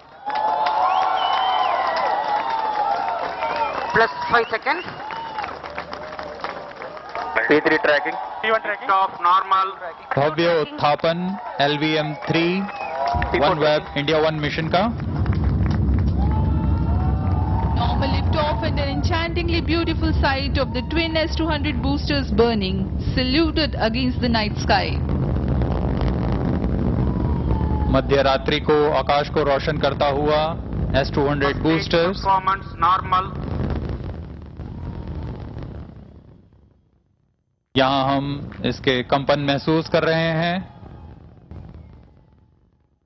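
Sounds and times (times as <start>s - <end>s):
rocket boosters rumbling: 0.0s - 37.0s, 37.8s - 43.0s.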